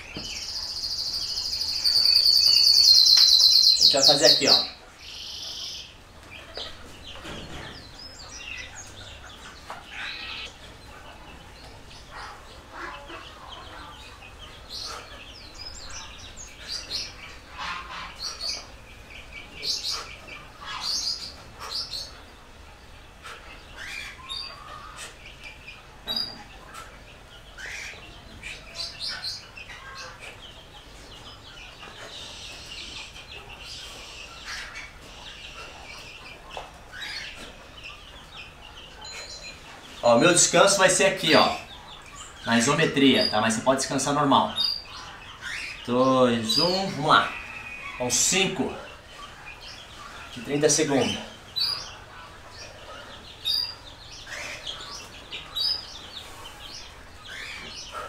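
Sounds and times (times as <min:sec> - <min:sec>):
small birds chirping: 0:00.0 - 0:58.0.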